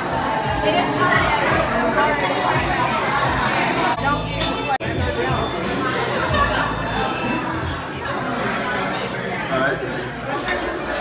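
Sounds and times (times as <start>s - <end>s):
diners' chatter: 0.0s - 11.0s.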